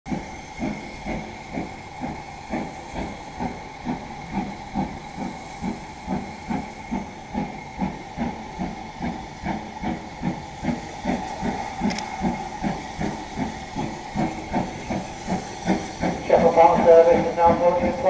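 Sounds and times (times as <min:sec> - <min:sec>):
steam hissing: 0:00.1 - 0:18.0
steam locomotive exhaust beats: 0:00.1 - 0:18.0.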